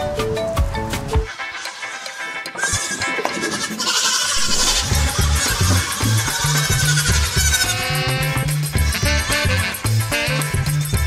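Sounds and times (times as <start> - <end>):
music: 0.0 - 11.0
goat kids bleating: 1.4 - 10.5
deep bass beat: 4.5 - 11.0.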